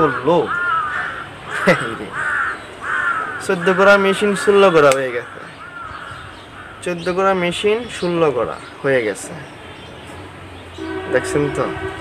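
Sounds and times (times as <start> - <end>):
crow cawing: 0.0 - 7.1.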